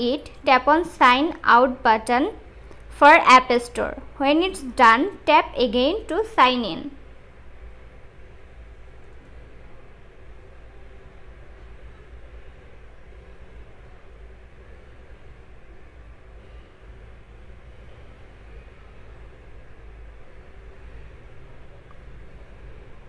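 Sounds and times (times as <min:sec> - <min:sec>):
low rumble with light hiss: 0:00.0 - 0:23.0.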